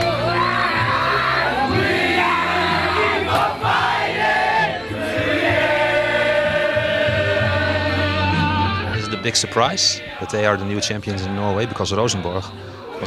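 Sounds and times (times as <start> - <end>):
group singing a celebration chant: 1.0 - 11.8.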